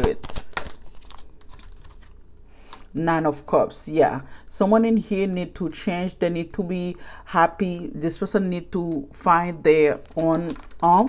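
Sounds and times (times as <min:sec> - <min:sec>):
cards clicking and rustling: 0:00.0 - 0:02.9, 0:10.0 - 0:10.8.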